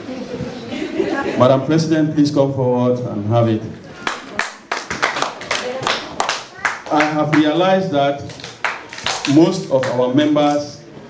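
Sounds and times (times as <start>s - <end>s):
audience clapping: 4.0s - 10.7s.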